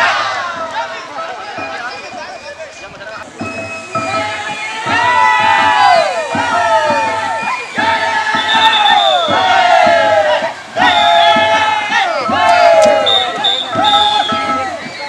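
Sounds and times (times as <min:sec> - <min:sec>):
crowd shouting long cries: 0:00.0 - 0:01.9, 0:03.2 - 0:15.0.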